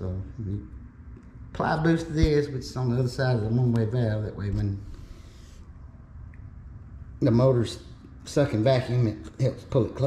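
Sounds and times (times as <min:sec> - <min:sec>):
faint low hum with hiss: 0:00.0 - 0:10.0.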